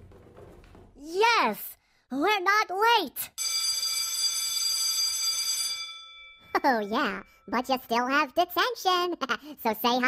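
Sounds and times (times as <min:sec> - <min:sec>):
electric school bell ringing: 0:03.4 - 0:07.6.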